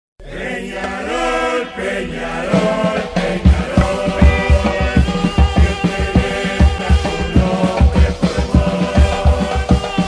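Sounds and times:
voices chanting slow melody: 0:00.2 - 0:10.0.

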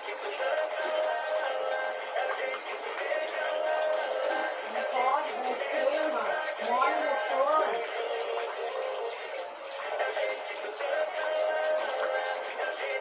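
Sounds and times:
faint background music: 0:00.0 - 0:13.0
indistinct person's voice: 0:00.2 - 0:09.2.

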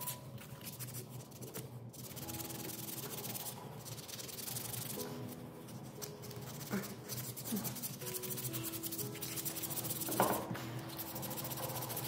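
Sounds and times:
sandpaper scratching wood: 0:00.6 - 0:05.2, 0:06.0 - 0:12.0.

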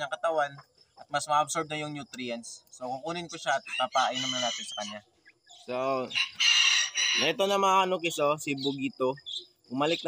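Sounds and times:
rooster crowing: 0:03.7 - 0:05.0, 0:06.1 - 0:07.5.

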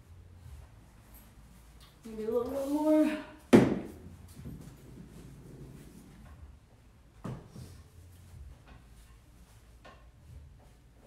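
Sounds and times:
hard object knocking on wooden furniture: 0:03.5 - 0:04.8.

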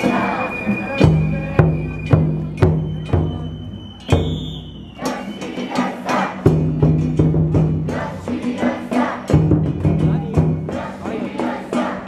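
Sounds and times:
voices: 0:00.0 - 0:06.6, 0:07.8 - 0:12.0.

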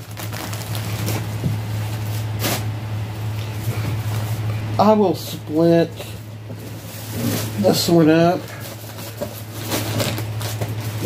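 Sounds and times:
low electrical hum: 0:00.0 - 0:11.0
items rustling and knocking: 0:06.0 - 0:11.0.

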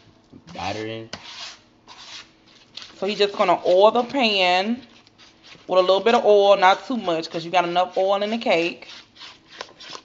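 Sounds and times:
spatula scraping batter in bowl: 0:00.5 - 0:10.0.

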